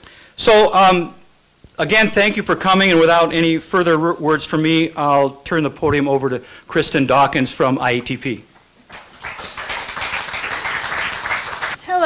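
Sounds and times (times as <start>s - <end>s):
audience applauding: 8.9s - 11.8s.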